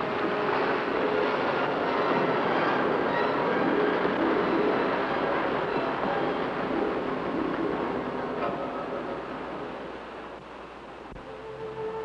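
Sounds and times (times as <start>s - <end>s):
ocean surf breaking: 0.0s - 11.1s.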